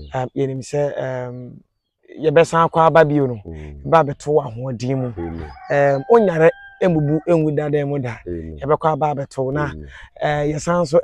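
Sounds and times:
men talking: 0:00.0 - 0:11.0
rooster crowing: 0:05.0 - 0:07.7.

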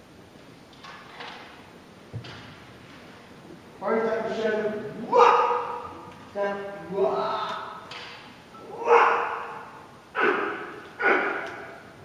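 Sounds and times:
hall noise: 0:03.4 - 0:12.0.

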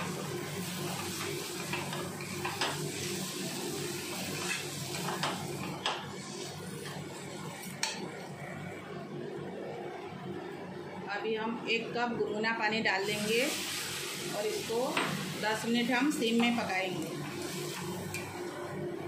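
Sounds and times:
frying hiss: 0:00.0 - 0:07.9, 0:13.0 - 0:18.8.

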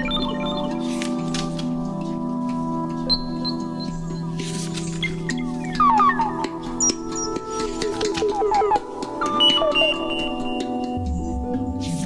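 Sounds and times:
high beeping notes: 0:08.3 - 0:10.6.

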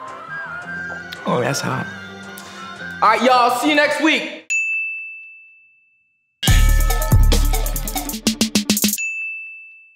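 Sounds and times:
loud bass-heavy beat music: 0:06.4 - 0:09.0.

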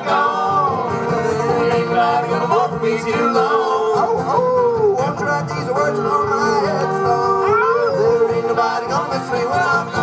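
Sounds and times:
bluegrass band playing: 0:00.0 - 0:10.0
singer howling: 0:05.8 - 0:08.6.

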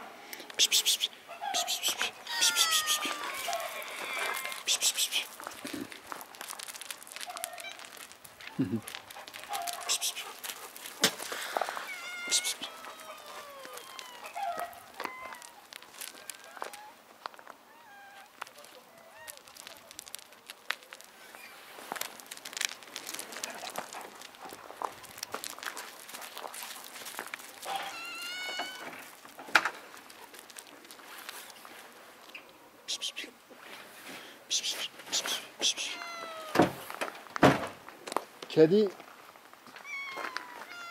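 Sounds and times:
cats meowing: 0:00.8 - 0:05.2, 0:07.2 - 0:10.5, 0:11.6 - 0:17.0, 0:17.6 - 0:20.2, 0:27.6 - 0:29.1, 0:35.2 - 0:36.9, 0:39.7 - 0:40.9
footsteps on gravel: 0:01.7 - 0:32.0, 0:34.9 - 0:40.9.

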